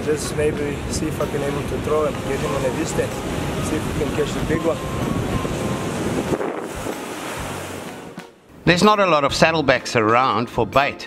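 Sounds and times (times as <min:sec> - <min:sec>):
wind buffeting microphone: 0:00.0 - 0:08.6
surf breaking on rocks: 0:00.0 - 0:08.8.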